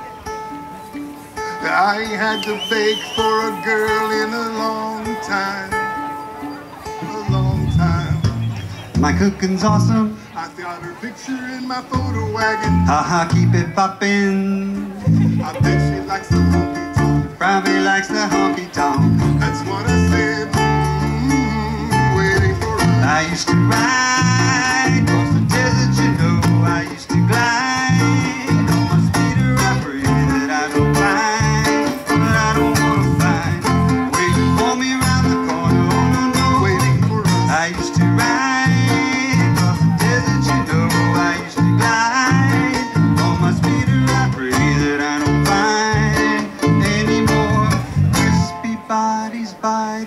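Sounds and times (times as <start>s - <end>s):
strummed ukuleles and guitar: 0.0s - 50.0s
steady bass beat: 18.9s - 48.5s.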